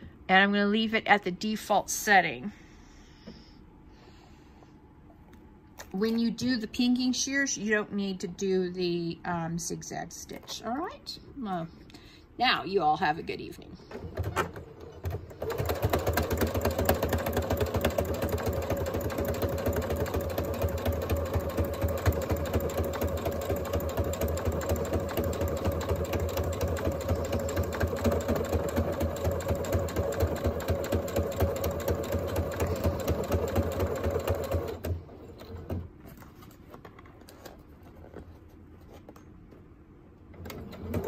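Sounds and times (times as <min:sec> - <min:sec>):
sewing machine stitching: 0:13.9 - 0:35.8, 0:40.4 - 0:41.0.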